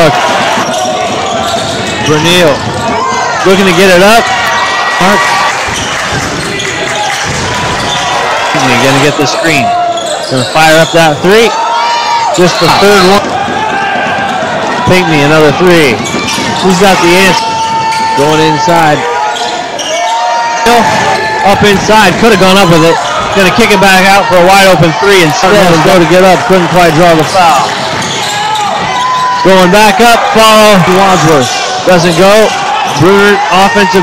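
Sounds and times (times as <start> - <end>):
basketball court noise: 0.0 - 34.0
commentator speaking: 21.4 - 27.7.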